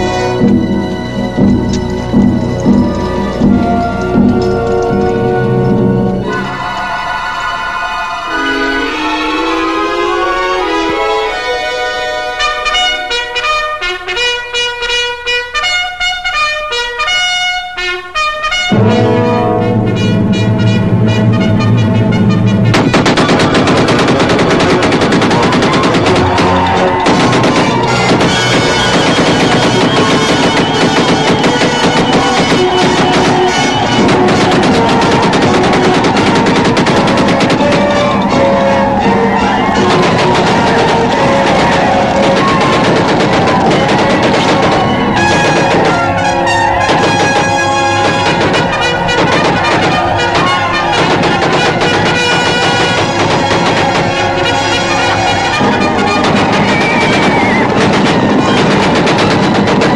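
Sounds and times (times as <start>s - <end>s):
orchestral battle music: 0.0s - 59.9s
trumpet fanfare: 0.0s - 59.9s
rapid gunfire: 22.7s - 59.9s.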